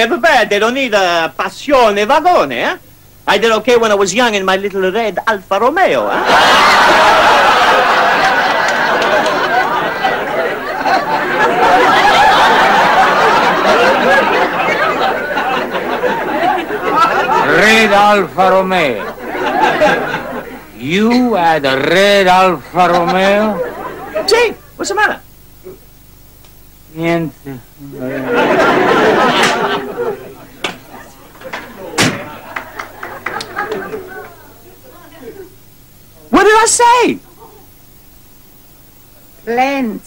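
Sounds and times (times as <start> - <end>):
studio audience laughing: 6.0 - 24.8, 27.9 - 35.4.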